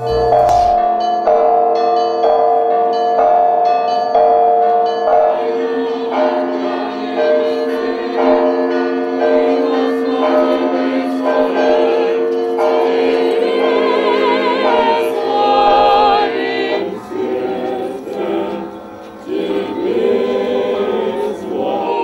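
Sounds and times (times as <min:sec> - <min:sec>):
crowd singing: 0:00.0 - 0:01.2, 0:04.8 - 0:22.0
church bells ringing: 0:00.0 - 0:22.0.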